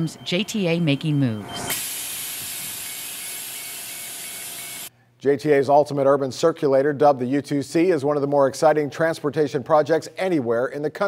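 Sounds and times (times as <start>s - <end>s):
bus pneumatic air hiss: 1.7s - 4.9s.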